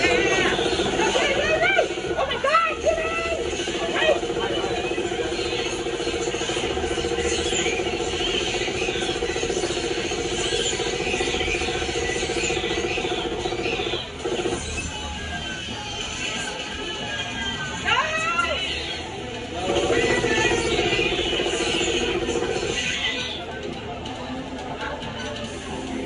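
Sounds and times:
game machine droning: 0:00.0 - 0:17.8, 0:18.6 - 0:26.0
faint background chatter: 0:00.0 - 0:26.0.

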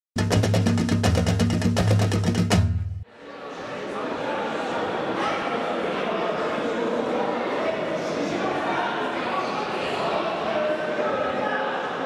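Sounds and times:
bass line: 0:00.2 - 0:03.0
rapid drum hits: 0:00.2 - 0:03.0
murmur of voices in a hall: 0:03.0 - 0:12.0.

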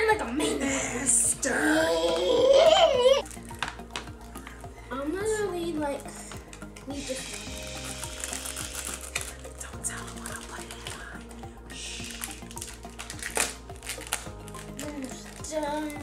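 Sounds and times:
music with low beat: 0:00.0 - 0:16.0.

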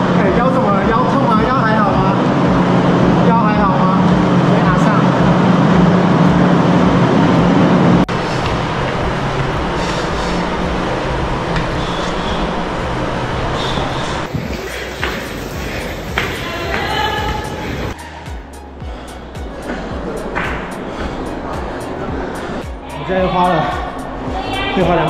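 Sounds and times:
low mechanical hum with rumble: 0:00.0 - 0:18.0.

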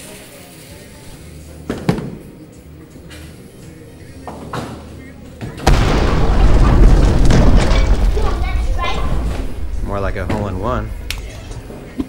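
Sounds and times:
bowling alley background noise: 0:00.0 - 0:12.0.

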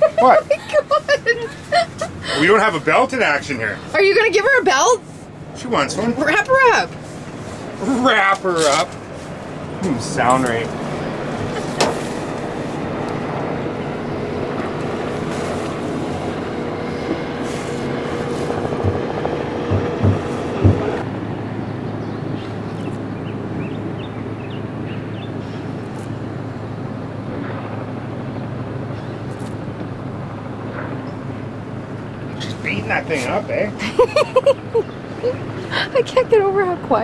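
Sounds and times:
outboard motor running: 0:00.0 - 0:37.0
short knocks: 0:18.5 - 0:21.0.

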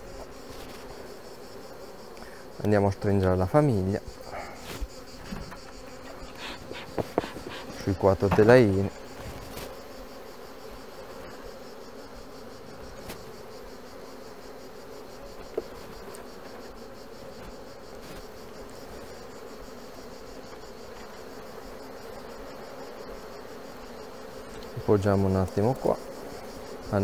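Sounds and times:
honeybees buzzing: 0:00.0 - 0:27.0.

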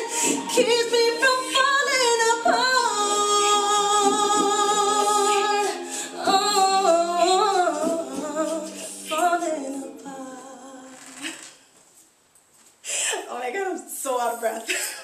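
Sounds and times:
woman singing: 0:00.0 - 0:11.4.

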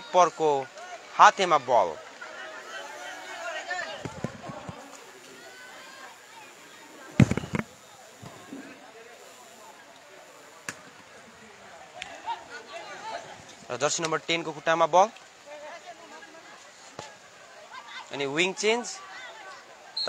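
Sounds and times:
faint chatter of voices: 0:00.0 - 0:20.0
loud deep thump: 0:07.2 - 0:07.7.

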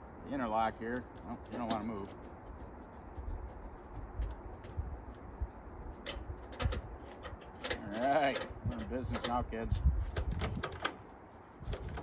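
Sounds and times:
tractor controls clicking and knocking: 0:06.0 - 0:09.5, 0:10.1 - 0:11.0.

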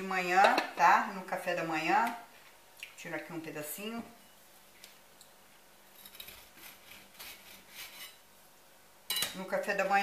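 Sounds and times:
knife sawing through bread: 0:06.3 - 0:08.2.

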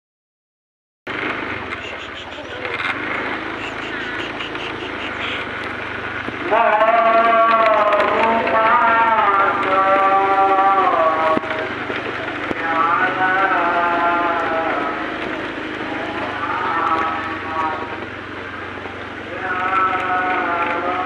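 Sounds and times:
scooter engine hum: 0:01.1 - 0:21.0
person chanting in long held notes: 0:06.4 - 0:21.0.

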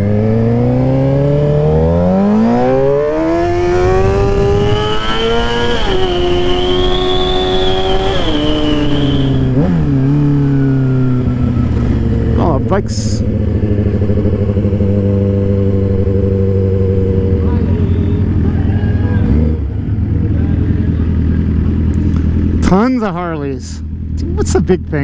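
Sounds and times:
motorcycle engine revving: 0:00.0 - 0:25.0.

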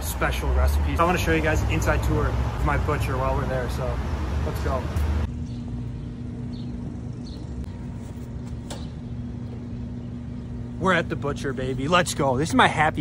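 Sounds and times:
car engine and road drone: 0:00.0 - 0:12.9
constant hum: 0:00.0 - 0:13.0.

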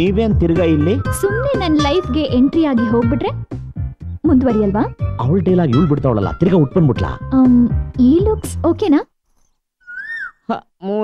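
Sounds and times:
high vocal cry: 0:09.9 - 0:10.4.

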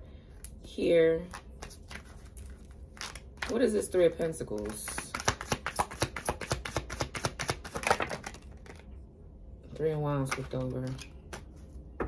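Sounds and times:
cards being shuffled by hand: 0:01.2 - 0:03.7, 0:04.4 - 0:08.9.

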